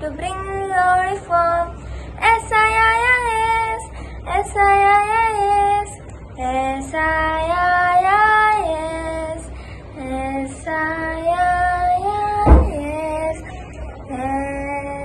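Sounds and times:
girl singing unaccompanied: 0.0 - 15.0
brief thump: 12.4 - 12.9.

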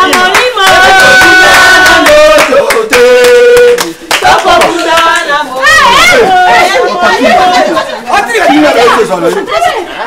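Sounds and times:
people talking and shouting: 0.0 - 10.0.

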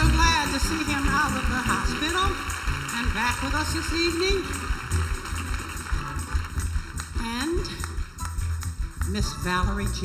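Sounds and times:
live band playing softly: 0.0 - 10.0
pulsing bass line: 0.0 - 10.0
room and audience noise: 0.0 - 10.0.

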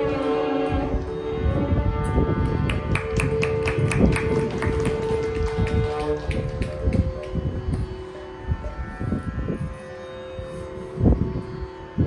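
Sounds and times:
steady held drone note: 0.0 - 12.0.

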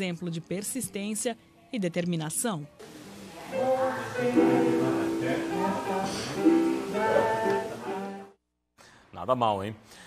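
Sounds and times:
electronic keyboard slow melody: 3.6 - 8.3.

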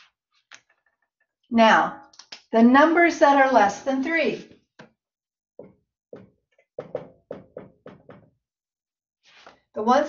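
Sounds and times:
marker knocking on whiteboard: 5.6 - 8.4.

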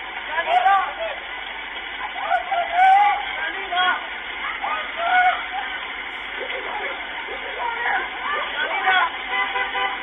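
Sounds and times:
people shouting: 2.0 - 5.9, 6.6 - 10.0.

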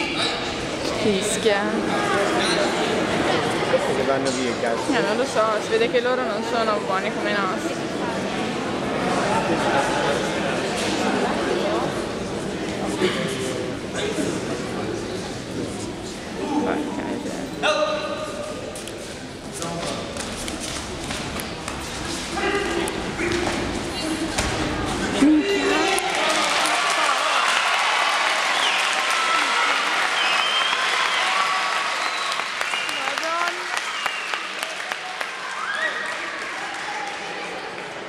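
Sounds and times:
crowd shouting and cheering: 22.3 - 38.0.

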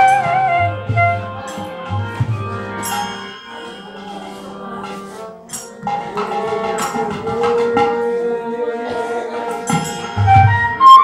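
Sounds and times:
sharp ringing strike: 2.8 - 5.8.

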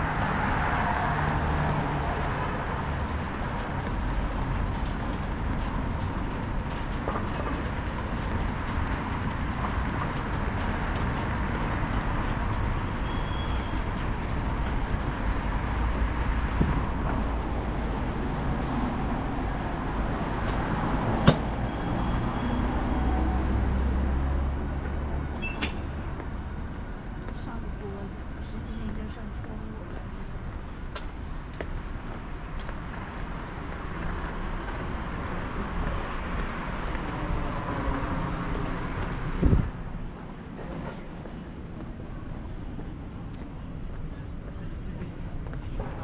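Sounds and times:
traffic rumble: 0.0 - 46.0.

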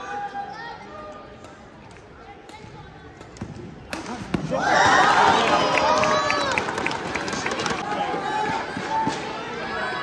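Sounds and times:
murmur of spectators: 0.0 - 10.0
crowd shouting and cheering: 4.2 - 10.0.

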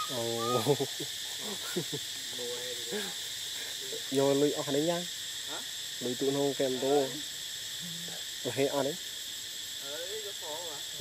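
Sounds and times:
forest insects droning: 0.0 - 11.0.

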